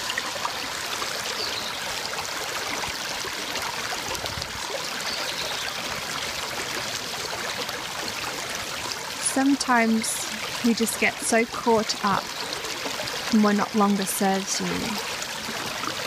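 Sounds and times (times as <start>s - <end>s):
creek water running over stones: 0.0s - 16.0s.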